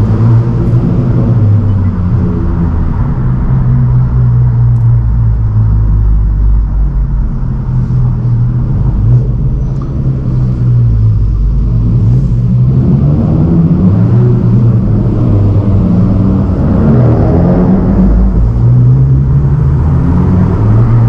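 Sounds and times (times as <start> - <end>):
car engine hum from inside cabin: 0.0 - 21.0.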